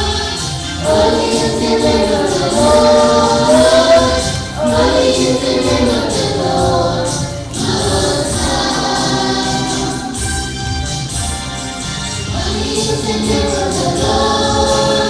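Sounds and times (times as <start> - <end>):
children's choir singing: 0.0 - 10.5, 12.3 - 15.0.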